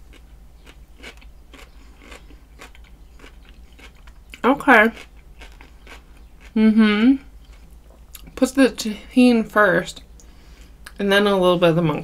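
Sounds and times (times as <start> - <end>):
chewing cucumber crunches: 0.0 - 6.6.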